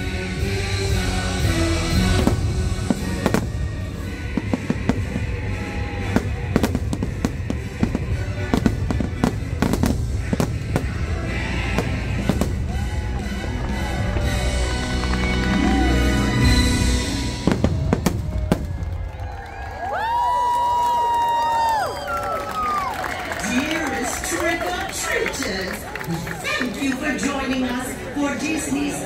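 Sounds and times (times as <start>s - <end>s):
music playing: 0.0s - 19.2s
deep rumble: 0.0s - 19.4s
fireworks bursting with sharp bangs: 0.5s - 14.9s, 16.4s - 19.2s.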